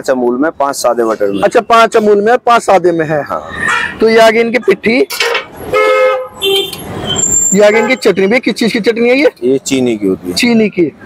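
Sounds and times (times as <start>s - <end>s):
street traffic: 0.0s - 11.0s
vehicle horn honking: 5.2s - 8.1s.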